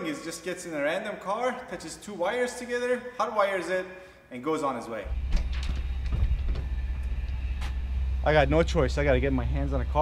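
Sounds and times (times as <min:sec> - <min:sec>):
low outdoor rumble: 0:05.1 - 0:10.0.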